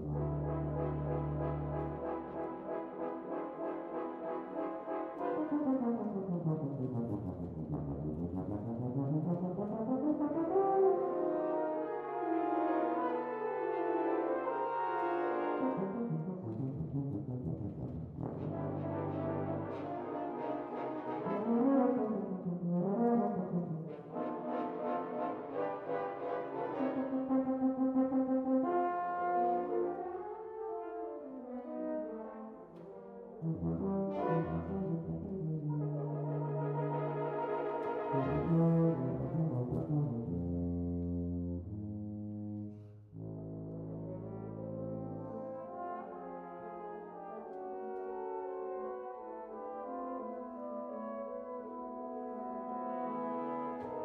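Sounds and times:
french horns playing: 0:00.0 - 0:54.0
tuba: 0:00.0 - 0:54.0.

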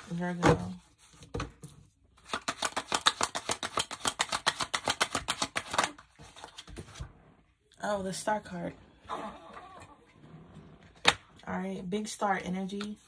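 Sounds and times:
cards being shuffled: 0:02.2 - 0:07.0.

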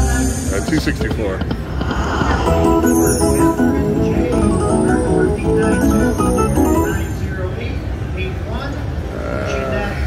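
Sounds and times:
slot machine win tune: 0:02.4 - 0:07.2.

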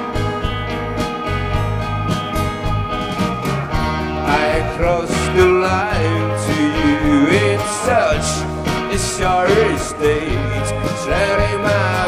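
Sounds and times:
bass notes: 0:00.0 - 0:12.0
keyboards: 0:00.0 - 0:12.0
strummed acoustic guitar: 0:00.0 - 0:12.0
sliding melody line: 0:00.9 - 0:12.0.

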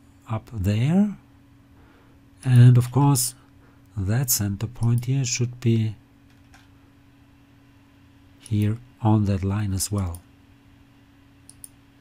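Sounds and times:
faint electrical hum: 0:00.0 - 0:12.0
faint click: 0:11.5 - 0:11.8.

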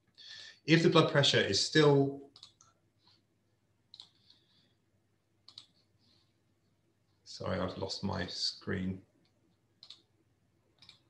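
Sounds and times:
faint computer clicks: 0:02.3 - 0:02.8, 0:05.4 - 0:05.8, 0:10.8 - 0:11.0.

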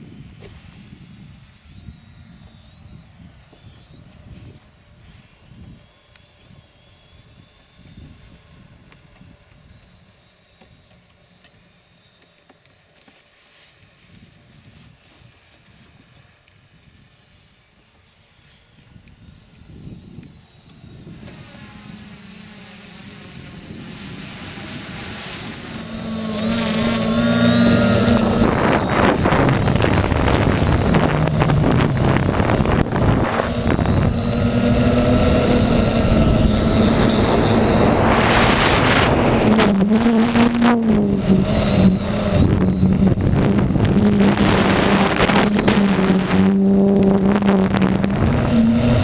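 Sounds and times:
wind on microphone: 0:00.0 - 0:09.8, 0:18.7 - 0:49.0
drone propellers whirring: 0:00.0 - 0:49.0.

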